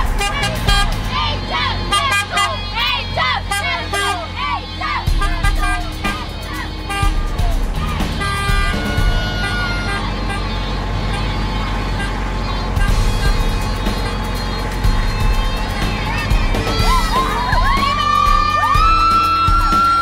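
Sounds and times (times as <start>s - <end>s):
background music with long held notes: 0.0s - 20.0s.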